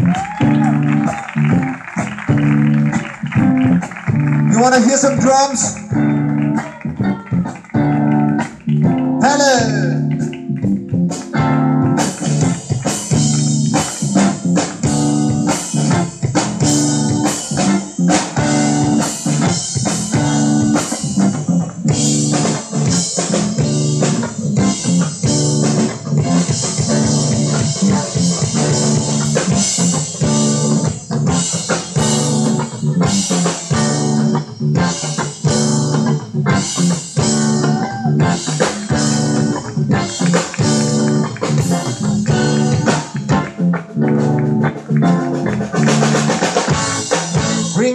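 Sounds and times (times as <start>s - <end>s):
bass guitar: 0.0s - 47.9s
drum kit beat: 0.0s - 47.9s
electric guitar: 0.0s - 47.9s.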